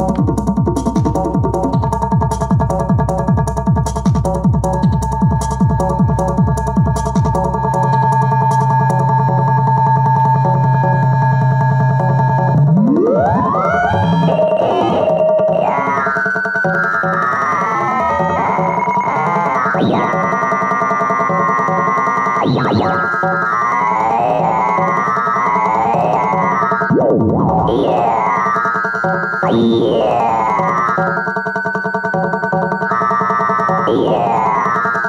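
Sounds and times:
drum machine kick drum: 0:00.0 - 0:09.6
swept synth sounds: 0:11.8 - 0:23.6
held electronic tones: 0:12.0 - 0:23.6.

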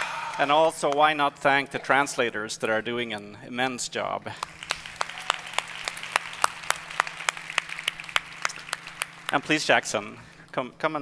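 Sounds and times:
audience applauding: 0:04.4 - 0:09.8.

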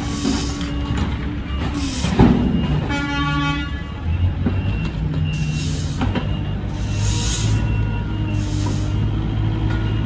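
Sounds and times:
heavy vehicle engines running: 0:00.0 - 0:10.0
vehicle horn tooting: 0:02.8 - 0:04.0.

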